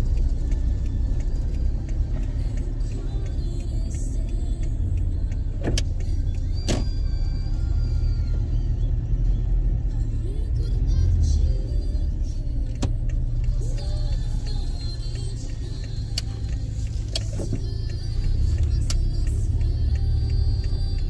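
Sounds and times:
sharp clicks: 0.0 - 9.7, 10.5 - 21.0
car engine and tyres rumbling: 0.0 - 21.0.

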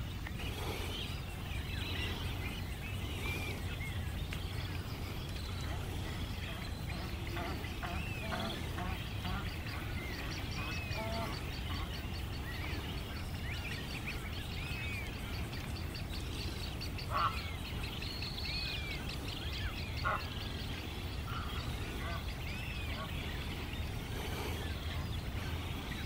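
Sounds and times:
birds chirping: 0.0 - 26.0
loud short bird calls: 0.4 - 26.0.

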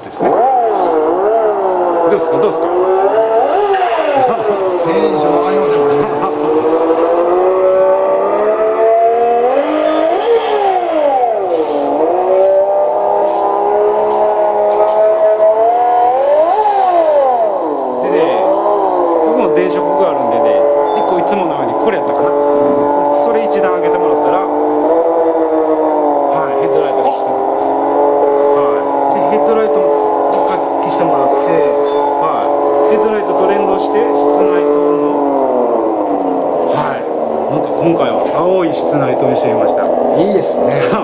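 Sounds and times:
simulated engine sound from speaker: 0.0 - 41.0.

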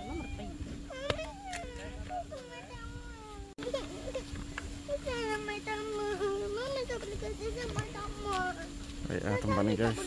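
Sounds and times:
young child whining: 0.0 - 4.3
steady low hum: 0.0 - 10.0.

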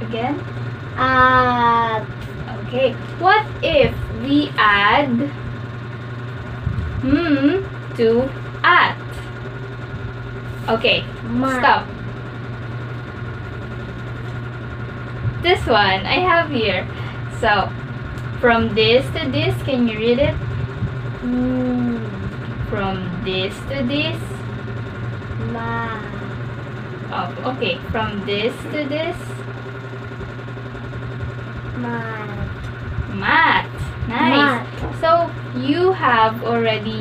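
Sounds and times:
low background hum: 0.0 - 37.0.

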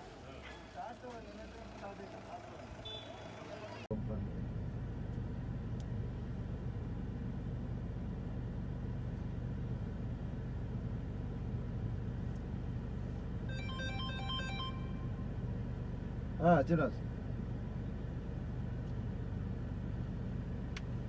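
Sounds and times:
vehicle engine rumbling: 0.0 - 21.0.

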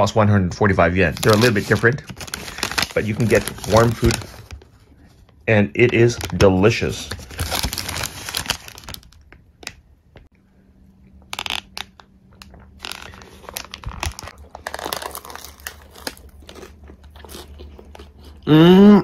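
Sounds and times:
paper wrapper crinkling: 1.0 - 5.2, 5.8 - 9.8, 11.3 - 18.0.

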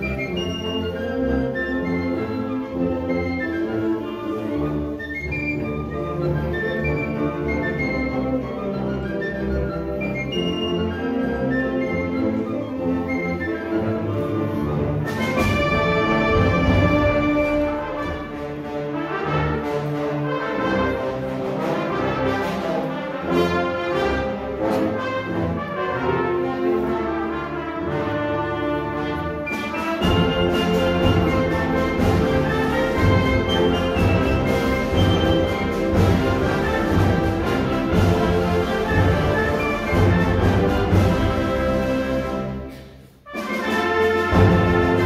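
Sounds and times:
concert band playing: 27.8 - 42.6.

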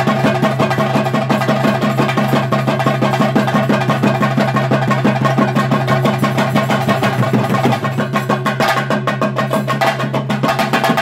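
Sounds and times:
cymbals: 0.0 - 11.0
fast drumming: 0.0 - 11.0.

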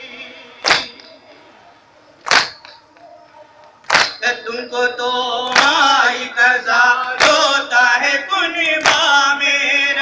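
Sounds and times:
faint chanting: 0.0 - 10.0
crowd beating chests: 0.6 - 1.5, 2.2 - 6.3, 7.0 - 7.7, 8.6 - 9.4.

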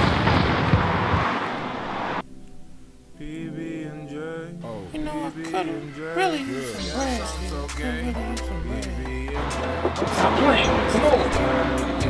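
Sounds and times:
explosion rumble: 0.0 - 2.2.

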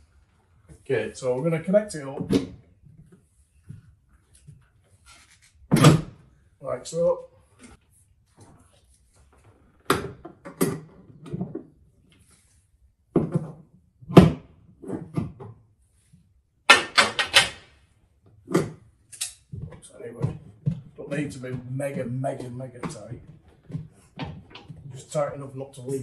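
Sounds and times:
clicks and knocks on pipework: 16.7 - 17.7.

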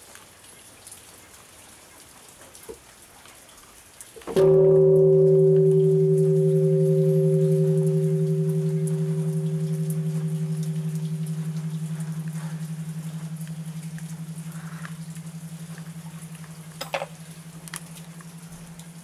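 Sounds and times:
temple bell ringing: 4.4 - 19.0.

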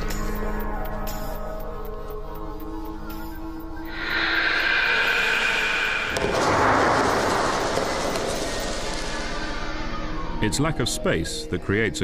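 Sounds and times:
dramatic film score: 0.0 - 12.0
loud rushing rumbling noise: 3.9 - 8.6.

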